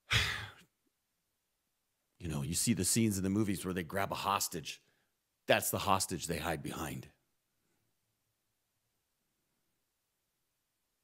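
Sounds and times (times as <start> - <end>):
man sighing: 0.0 - 0.6.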